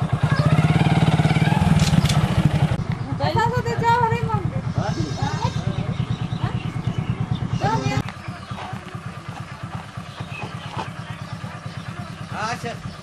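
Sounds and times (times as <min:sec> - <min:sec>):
small engine idling: 0:00.0 - 0:13.0
voices talking: 0:02.5 - 0:13.0.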